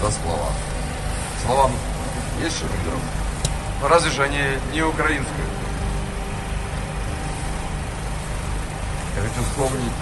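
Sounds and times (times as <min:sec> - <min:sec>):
constant hiss: 0:00.0 - 0:10.0
low rumble: 0:00.0 - 0:10.0.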